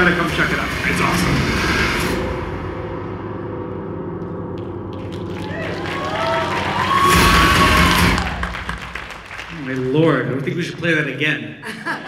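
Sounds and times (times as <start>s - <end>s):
low droning horror music: 0.0s - 9.2s
loud music hit: 0.0s - 9.4s.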